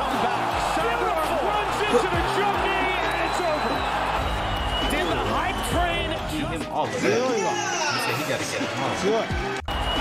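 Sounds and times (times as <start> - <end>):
man commentating: 0.0 - 3.8
arena crowd noise: 0.0 - 10.0
background music: 0.0 - 10.0.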